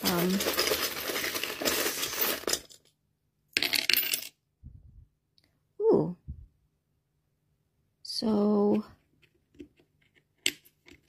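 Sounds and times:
coins and charms jingling: 0.0 - 2.8
coins clattering onto wood: 0.0 - 2.9, 3.6 - 4.3.

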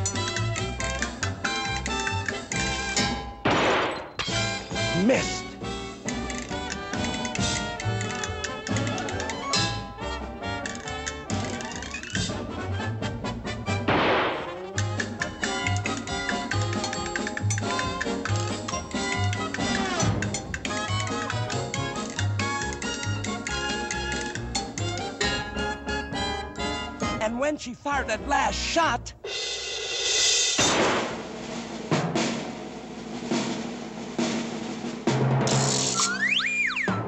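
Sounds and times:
orchestral dance music: 4.4 - 30.4
loud noisy crash: 30.6 - 31.4.

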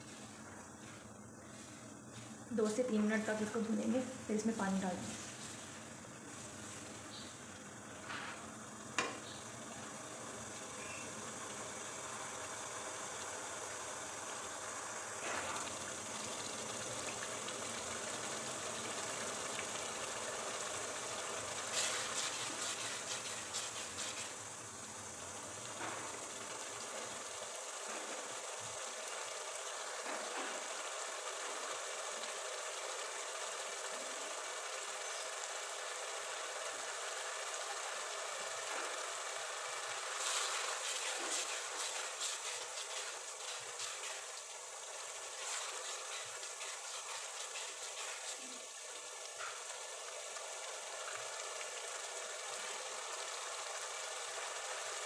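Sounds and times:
lentils sizzling in a pot: 0.0 - 55.0.

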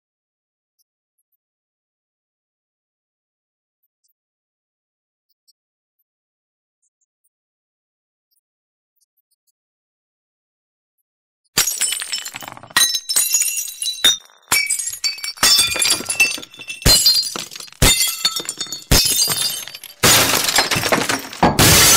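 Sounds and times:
glass shattering: 11.6 - 21.9.

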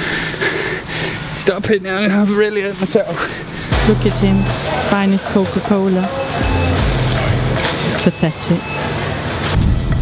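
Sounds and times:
background music with deep bass: 3.7 - 8.0.

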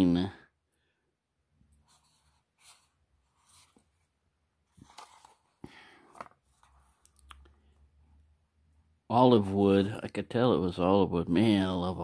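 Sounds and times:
paper rustling: 4.7 - 7.0.

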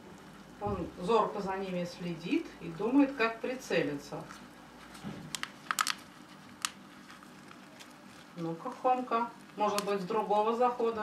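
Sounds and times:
plastic cup clicking: 5.3 - 6.0.

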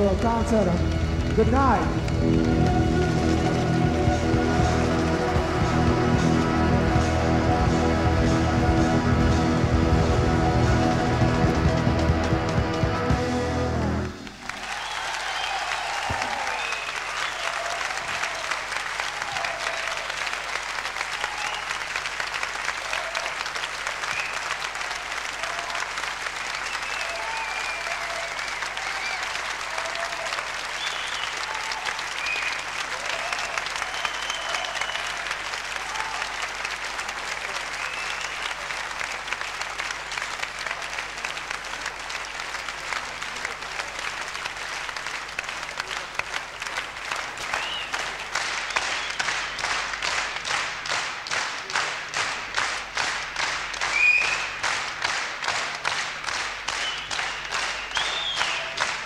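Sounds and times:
audience shouts and cheers: 0.0 - 22.0, 22.6 - 23.7, 24.6 - 36.8
audience applause: 0.0 - 59.0.

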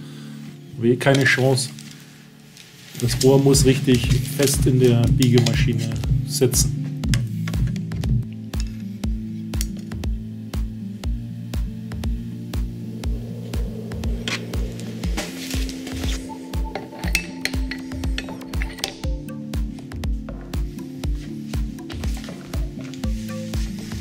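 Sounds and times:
background music with steady beat: 0.0 - 24.0.

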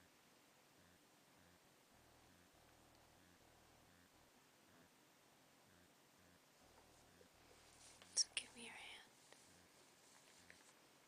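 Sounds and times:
person whispering: 6.9 - 9.7.

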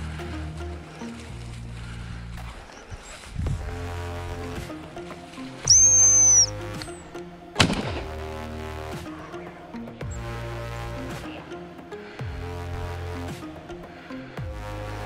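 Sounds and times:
background music: 0.0 - 2.7, 3.5 - 15.0
high-pitched whistle blast: 5.6 - 7.0
shotgun shot: 7.6 - 8.2.

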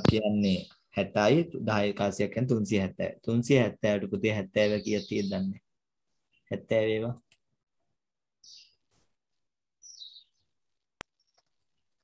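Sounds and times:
high bird-like chirps: 9.8 - 10.5.

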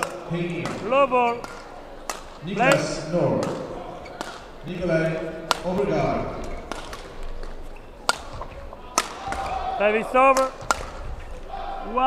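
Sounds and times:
badminton racket hitting shuttlecock: 0.0 - 11.4.

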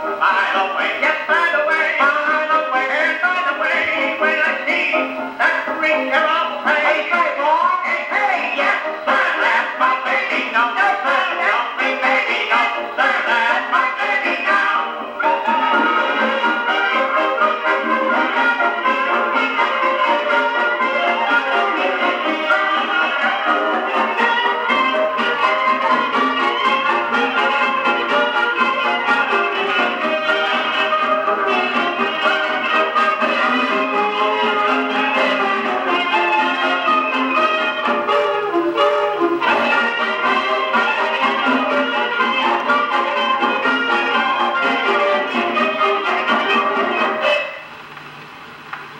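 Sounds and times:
gramophone playing dance-band music: 0.0 - 47.9.

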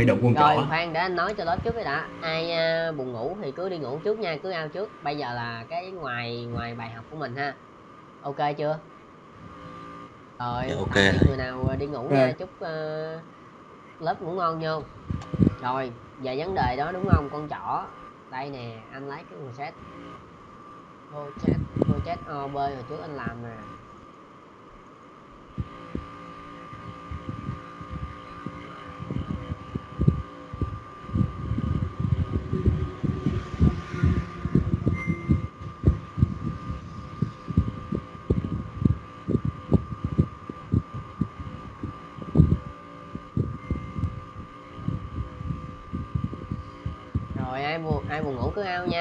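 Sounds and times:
high-pitched whine: 0.0 - 49.0
soft low thuds: 25.5 - 49.0.

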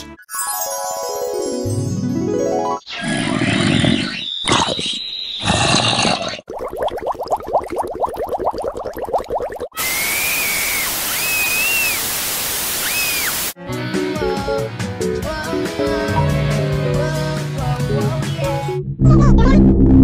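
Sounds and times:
rising and falling whistling tones: 3.9 - 5.5, 9.8 - 13.6
high steady whistle: 9.8 - 13.6
noisy bursts: 9.8 - 13.6.

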